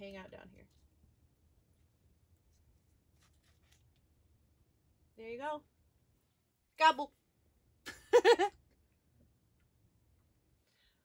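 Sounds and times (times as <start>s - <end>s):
faint paper rustles: 0.4s - 4.4s.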